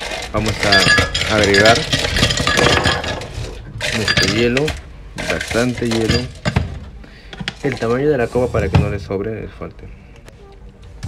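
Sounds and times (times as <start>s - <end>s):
ice cubes clinking in glass jar: 0.0s - 6.6s.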